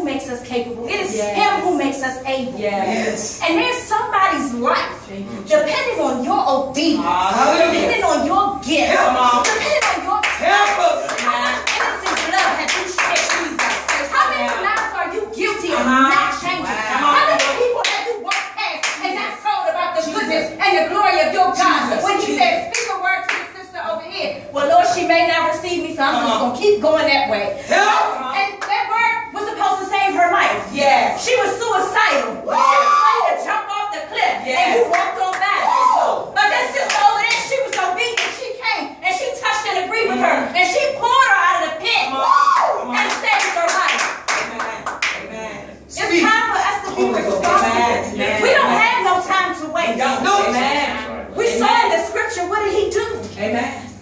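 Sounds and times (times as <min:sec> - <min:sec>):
woman speaking impassionedly: 0:00.0 - 0:53.9
excited voices: 0:06.7 - 0:25.0, 0:27.3 - 0:54.0
hands clapping: 0:09.4 - 0:15.0, 0:17.4 - 0:19.1, 0:36.8 - 0:38.4, 0:42.5 - 0:45.2
hand claps: 0:42.6 - 0:45.2.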